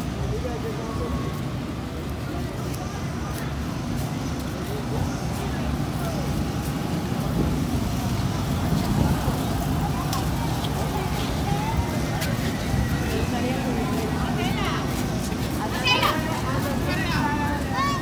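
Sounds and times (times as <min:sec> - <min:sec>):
faint distant voices: 0:00.0 - 0:18.0.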